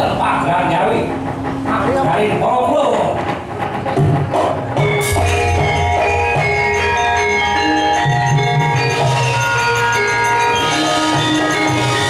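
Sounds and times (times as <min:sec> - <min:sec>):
rhythmic clatter of knocks: 0:00.0 - 0:12.0
ringing metallophones: 0:04.8 - 0:12.0.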